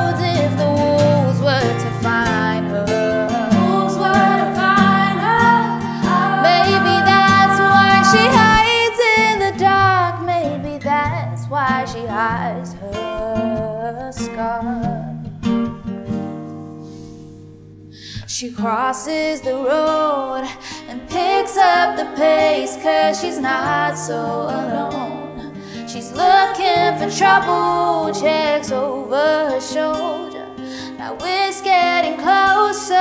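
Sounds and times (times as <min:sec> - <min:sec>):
woman singing: 0:00.0 - 0:15.3, 0:18.2 - 0:33.0
acoustic guitar: 0:00.0 - 0:33.0.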